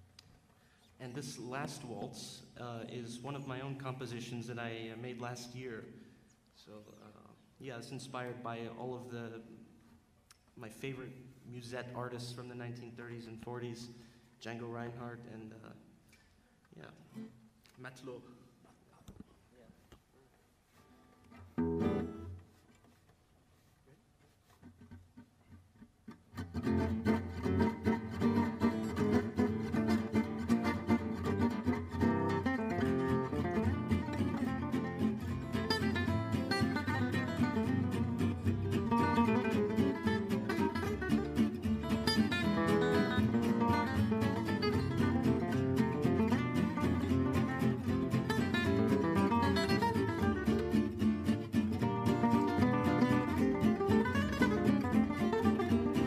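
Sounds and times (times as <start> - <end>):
gypsy jazz acoustic guitars: 20.7 - 56.0
upright bass: 26.4 - 56.0.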